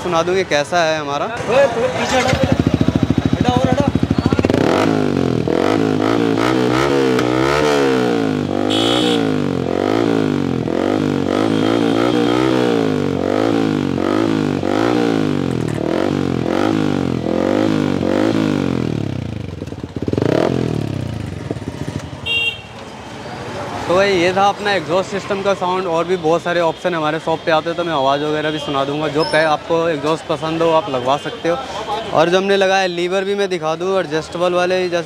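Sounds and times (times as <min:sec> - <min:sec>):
motorcycle engine revving: 0:01.4 - 0:22.5.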